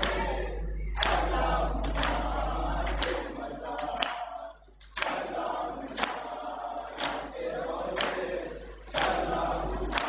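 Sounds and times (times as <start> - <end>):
men chanting in unison: 0.0 - 10.0.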